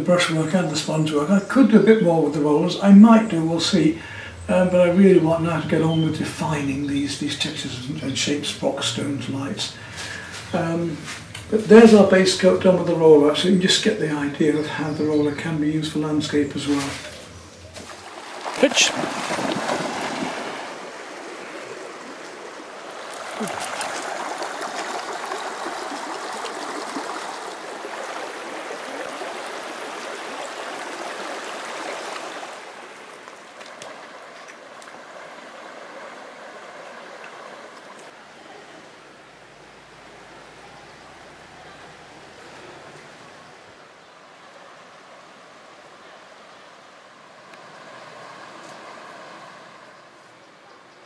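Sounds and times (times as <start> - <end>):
river rushing over rocks: 18.0 - 49.9.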